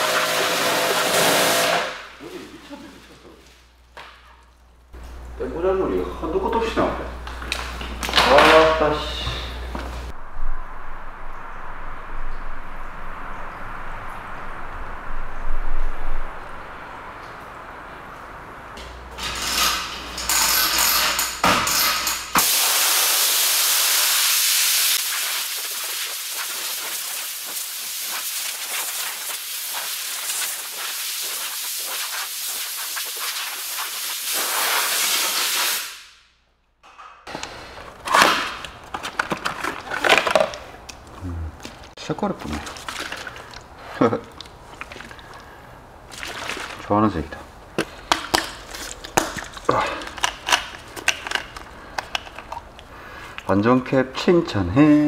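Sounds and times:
compressed air blow gun hissing: 22.4 - 36.1.

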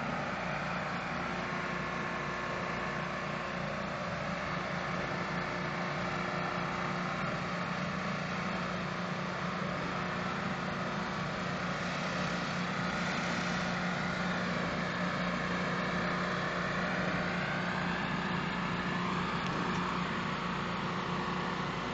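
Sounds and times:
pressure washer engine running: 0.0 - 21.9
water jet hissing on concrete: 0.0 - 21.9.

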